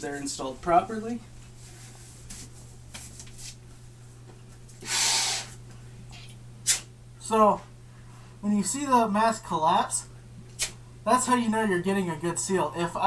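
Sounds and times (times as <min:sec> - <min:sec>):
rushing breath through gas mask: 0:04.8 - 0:05.6.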